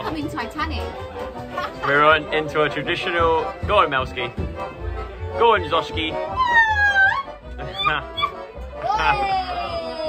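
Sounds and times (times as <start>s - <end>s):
band music: 0.0s - 10.0s
toddler whiny crying: 6.3s - 10.0s.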